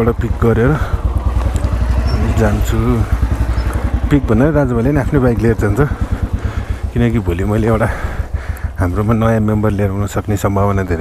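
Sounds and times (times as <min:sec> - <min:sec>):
motorcycle engine idling: 0:00.0 - 0:11.0
person speaking: 0:02.0 - 0:11.0.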